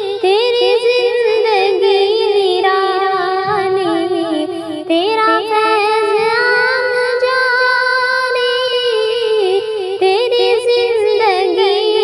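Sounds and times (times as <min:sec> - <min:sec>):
person singing devotional song: 0:00.0 - 0:12.0.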